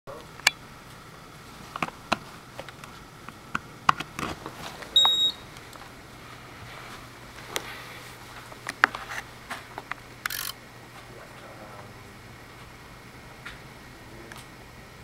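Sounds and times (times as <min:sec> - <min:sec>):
faint low hum: 0:00.1 - 0:15.0
short high electronic beep: 0:05.0 - 0:05.4.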